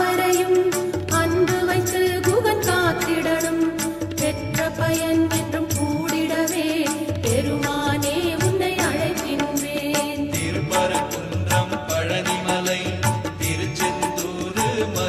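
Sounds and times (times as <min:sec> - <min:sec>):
devotional song: 0:00.0 - 0:15.0.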